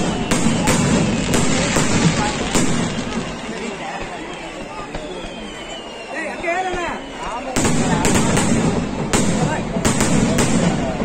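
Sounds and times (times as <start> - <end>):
firework blast: 0.0 - 6.0, 6.6 - 11.0
fireworks crackling: 0.0 - 11.0.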